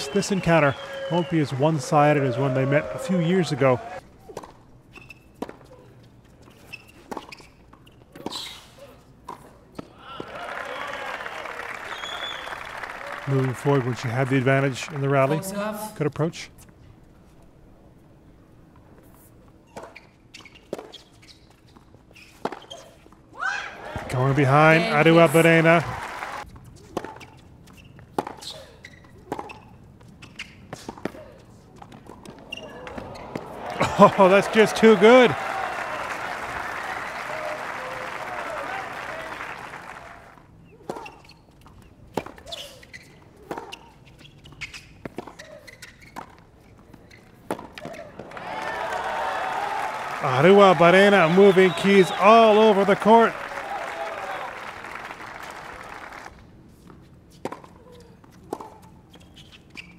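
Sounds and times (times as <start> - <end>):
crowd applause: 0.0 - 4.0, 10.1 - 15.4, 23.8 - 26.4, 32.8 - 40.4, 48.2 - 56.4.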